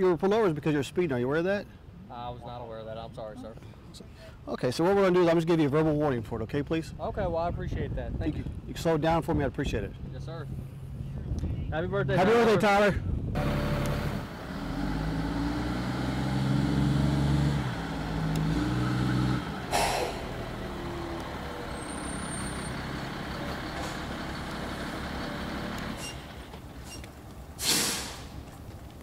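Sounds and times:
truck engines running: 12.0 - 29.0
short loud hiss: 19.7 - 20.4, 27.6 - 28.4.

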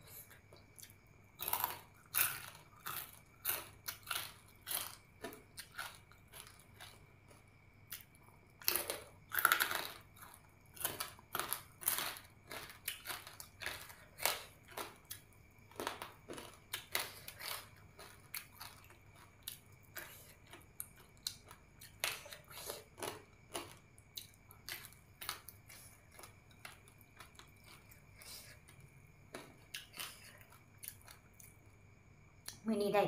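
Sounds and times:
crunching and chewing crispy food: 0.0 - 32.6.

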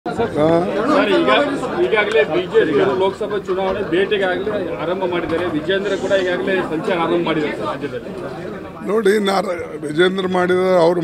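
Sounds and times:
several voices talking: 0.1 - 11.0.

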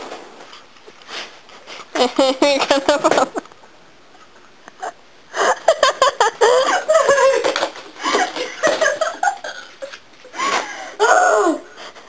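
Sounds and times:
high-pitched laughing: 4.8 - 11.7.

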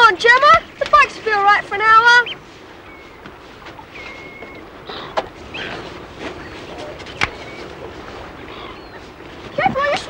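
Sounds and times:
seaside background noise: 0.0 - 10.0.

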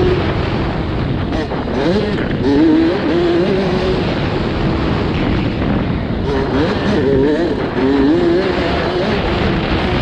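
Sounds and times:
constant rush of noise: 0.0 - 10.0
dirt bike engine revving: 0.0 - 10.0.

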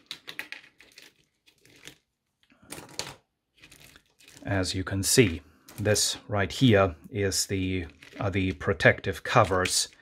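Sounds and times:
brittle plastic crackling: 0.0 - 4.7.

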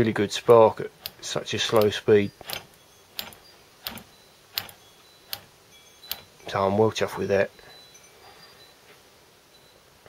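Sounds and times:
spark snapping across plug gap: 1.0 - 5.5.

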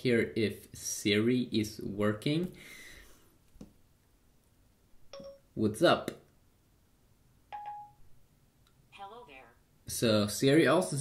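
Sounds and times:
synthetic voice speaking: 9.0 - 9.6.

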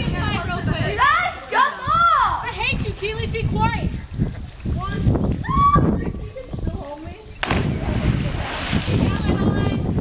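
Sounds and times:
loud splash into water: 7.4 - 9.3
falling spray and churning water: 7.4 - 9.5.

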